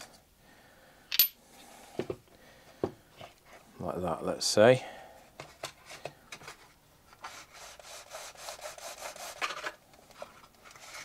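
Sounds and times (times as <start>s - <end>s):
small object clinking on workbench: 1.1s - 1.4s.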